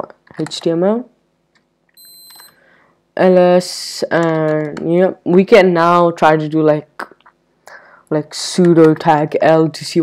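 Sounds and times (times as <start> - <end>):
high-pitched electronic beep: 2.0 - 2.6.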